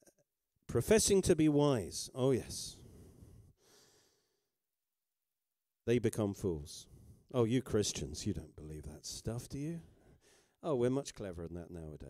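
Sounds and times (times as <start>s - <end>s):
faint breath on microphone: 2.8s - 4.5s, 9.9s - 10.6s.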